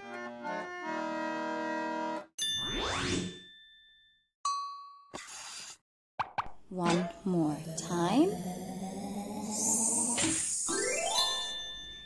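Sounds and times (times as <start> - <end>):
chime: 2.4 - 5.1, 10.8 - 12.0.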